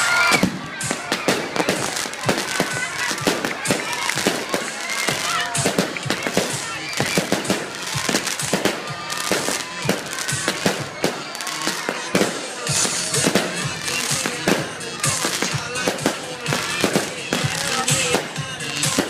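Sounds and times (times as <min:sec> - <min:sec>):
fireworks cracking and popping: 0:00.0 - 0:19.0.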